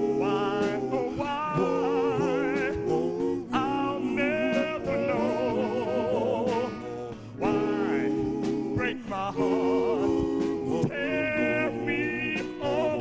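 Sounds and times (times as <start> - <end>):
man singing with vibrato: 0.0 - 13.0.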